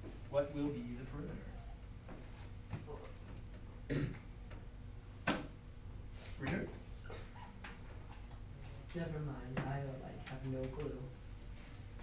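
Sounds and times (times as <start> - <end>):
person coughing: 3.9 - 4.2.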